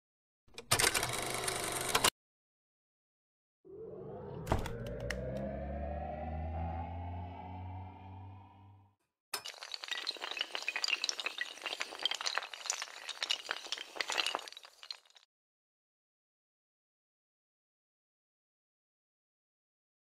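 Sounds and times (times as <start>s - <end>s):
low rumble: 3.7s - 8.9s
rising tone: 3.7s - 8.9s
glass shattering: 9.4s - 15.2s.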